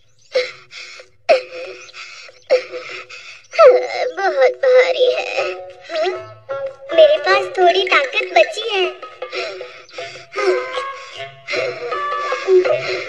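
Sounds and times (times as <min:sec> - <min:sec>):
background music: 0:02.5 - 0:13.0.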